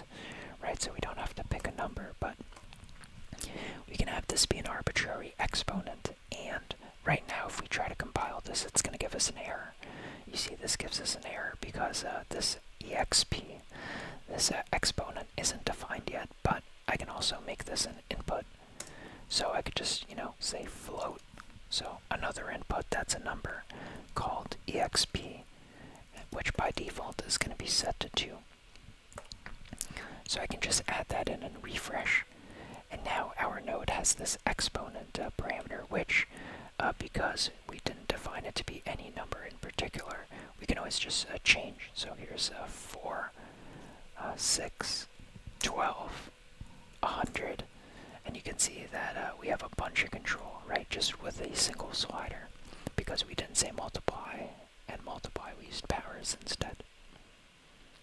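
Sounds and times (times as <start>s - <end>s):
whispered speech: 0.6s - 2.4s, 3.9s - 13.6s, 14.3s - 18.5s, 19.3s - 25.4s, 26.2s - 28.4s, 30.3s - 32.3s, 32.9s - 43.3s, 44.2s - 46.3s, 47.0s - 56.8s.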